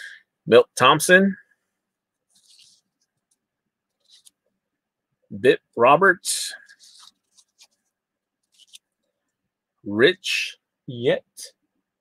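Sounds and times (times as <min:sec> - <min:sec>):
cardboard cards rustling: 0:02.2 - 0:04.4, 0:06.6 - 0:09.1.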